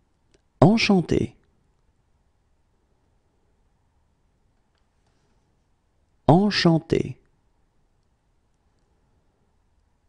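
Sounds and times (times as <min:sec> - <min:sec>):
person speaking: 0:00.3 - 0:01.5, 0:06.2 - 0:07.3.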